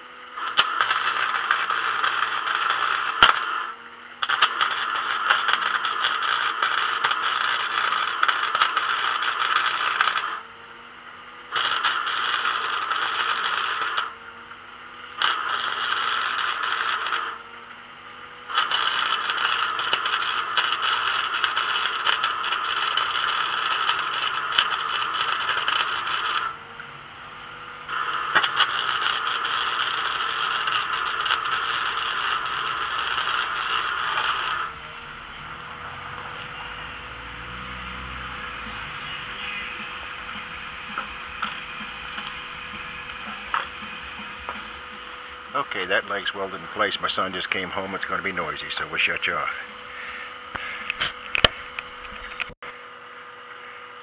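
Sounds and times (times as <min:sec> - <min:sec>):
welding arc crackling and sizzling: 0:00.0 - 0:10.5, 0:11.4 - 0:14.2, 0:15.0 - 0:17.5, 0:18.2 - 0:26.9, 0:27.5 - 0:52.6.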